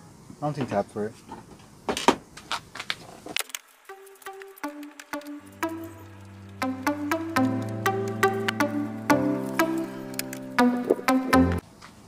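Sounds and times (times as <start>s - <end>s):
music: 3.8s - 11.6s.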